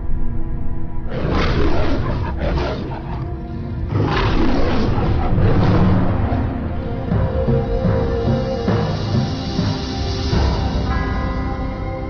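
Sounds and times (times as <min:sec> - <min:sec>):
dark background music: 0:00.0 - 0:12.0
beast roaring: 0:01.1 - 0:06.9.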